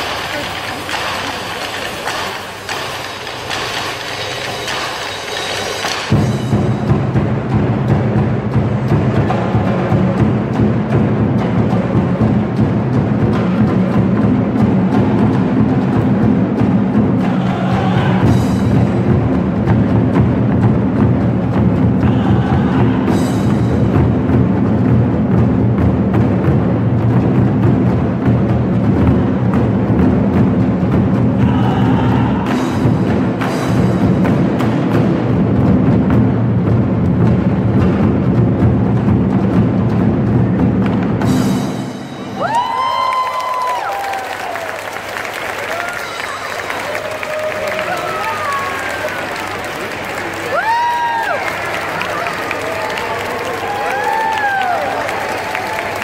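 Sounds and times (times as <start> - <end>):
barrel drums beaten: 0.0 - 42.4.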